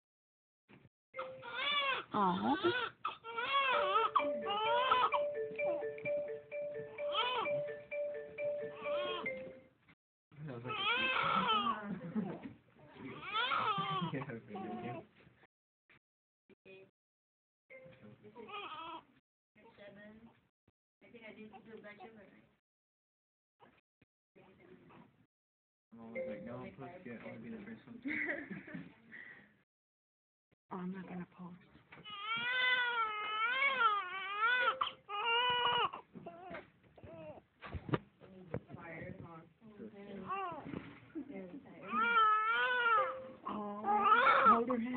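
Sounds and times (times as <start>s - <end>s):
newborn baby crying: 1.2s - 5.3s, 7.0s - 7.7s, 8.8s - 9.3s, 10.7s - 11.8s, 13.1s - 15.0s, 18.4s - 19.1s, 32.0s - 37.4s, 41.8s - 44.6s
simple two-note tune: 4.2s - 9.7s.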